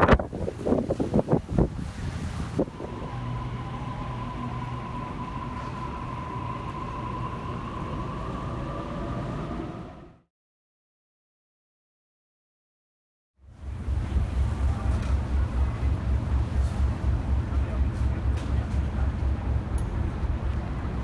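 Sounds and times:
wind buffeting microphone: 0.0s - 9.6s
steady low hum: 0.0s - 10.1s, 13.4s - 21.0s
faint held high tone: 2.6s - 9.7s.

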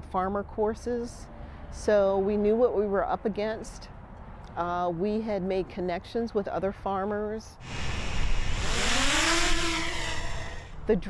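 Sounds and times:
broad hiss: 7.6s - 9.4s
drone propellers whining: 7.6s - 11.0s.

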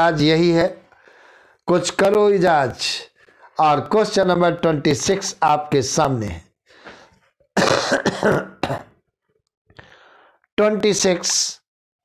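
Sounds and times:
man coughing: 7.6s - 9.0s.

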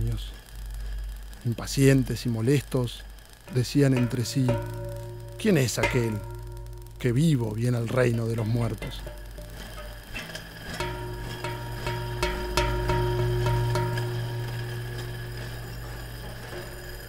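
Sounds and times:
low sustained drone: 3.5s - 17.0s
struck notes ringing: 3.5s - 17.0s.

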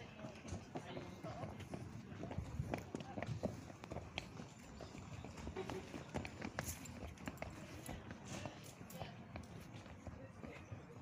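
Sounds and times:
people talking: 0.0s - 3.6s, 7.4s - 11.0s
hooves clip-clopping on tarmac: 0.0s - 11.0s.

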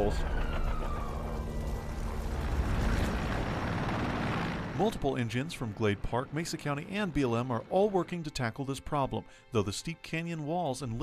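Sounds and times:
helicopter hovering: 0.0s - 9.1s.

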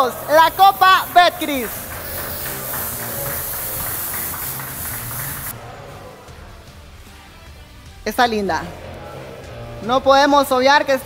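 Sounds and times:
jet cannons hissing loudly: 0.0s - 5.6s
background music: 0.0s - 11.0s.

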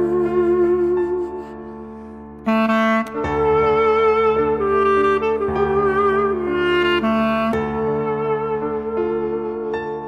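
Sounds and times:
clarinet folk melody: 0.0s - 10.0s.

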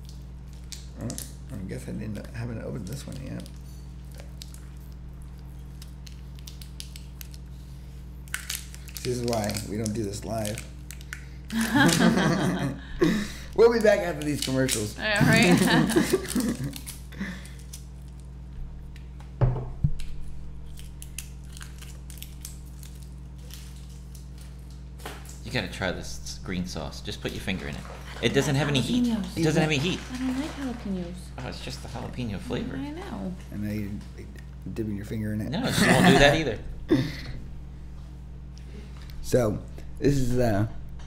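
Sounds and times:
low steady hum: 0.0s - 41.0s
objects rustling and clicking: 29.2s - 31.0s.

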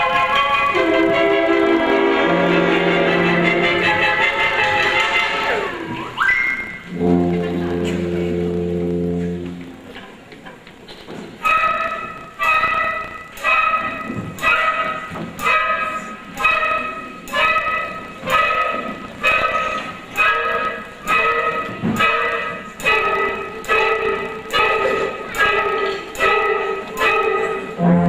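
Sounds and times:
concert band accented chords: 0.0s - 5.9s, 6.7s - 10.0s, 11.4s - 28.0s
low sustained band note: 6.9s - 9.7s.

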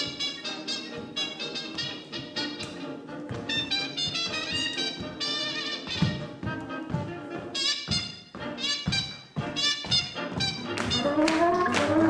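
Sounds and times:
swing jazz with brass: 0.0s - 12.0s.

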